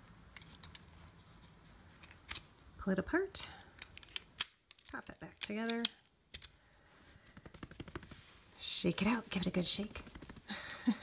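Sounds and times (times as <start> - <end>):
small clicks and rustling: 0.0 - 2.5.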